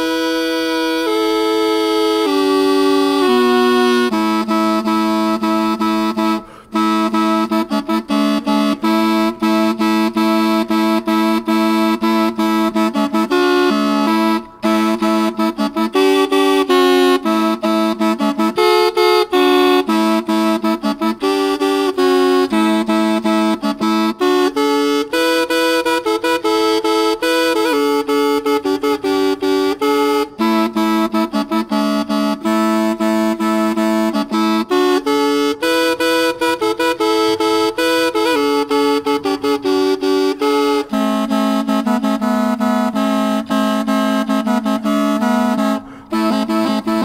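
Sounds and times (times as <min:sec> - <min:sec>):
double pipe melody: 0:00.0 - 0:47.0.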